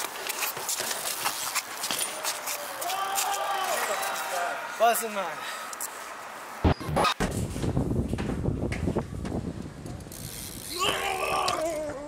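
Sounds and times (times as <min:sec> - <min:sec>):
people whooping and shouting: 0:02.0 - 0:04.9.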